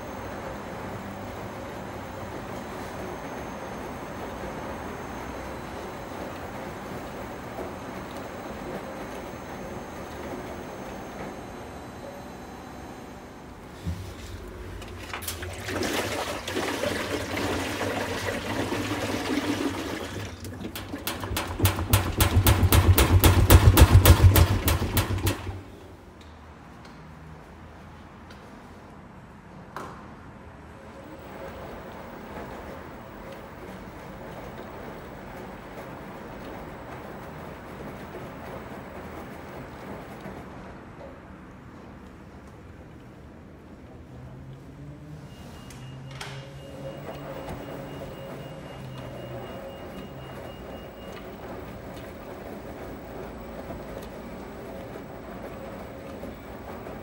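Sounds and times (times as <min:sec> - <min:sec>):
washing machine tumbling laundry: 0:00.0 - 0:26.0, 0:30.9 - 0:42.3, 0:45.2 - 0:57.0.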